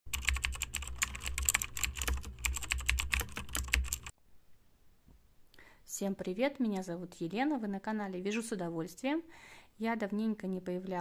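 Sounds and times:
rapid keyboard-like clicking: 0:00.1 - 0:04.1.

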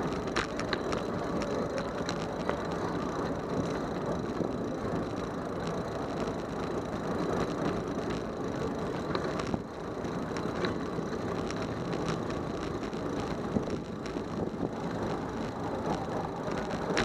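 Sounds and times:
bicycle tyre and road noise: 0:00.0 - 0:17.0
bike rattles and clicks: 0:00.0 - 0:17.0.

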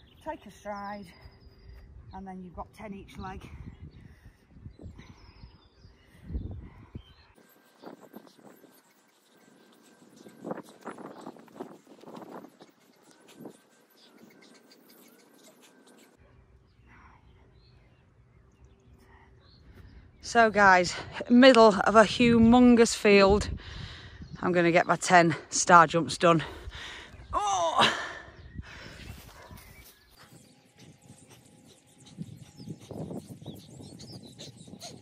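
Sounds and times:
wind gusts: 0:00.0 - 0:15.4, 0:18.8 - 0:35.0
distant birds chirping: 0:00.0 - 0:35.0.

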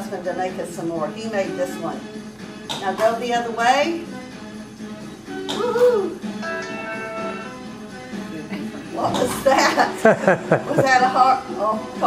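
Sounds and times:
soft guitar music: 0:05.3 - 0:11.0.

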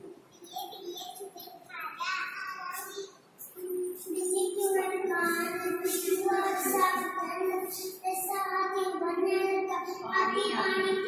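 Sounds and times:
children singing: 0:03.7 - 0:11.0.

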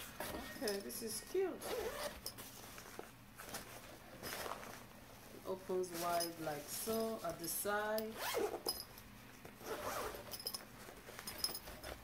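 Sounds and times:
handling rustles: 0:00.0 - 0:12.0
zipper of bag being pulled open: 0:08.2 - 0:08.7, 0:09.6 - 0:10.4.

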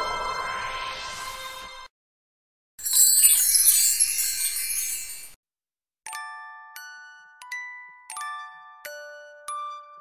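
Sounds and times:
sparkle chime tones: 0:02.8 - 0:05.4.

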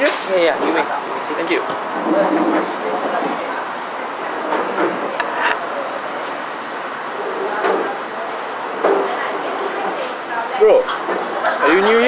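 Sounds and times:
distant chatter: 0:00.0 - 0:12.0
traffic noise: 0:00.0 - 0:12.0.

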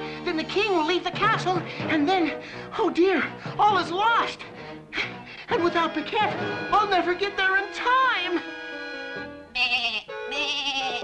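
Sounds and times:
background music: 0:00.0 - 0:11.0
cartoon goat bleating: 0:09.5 - 0:11.0.

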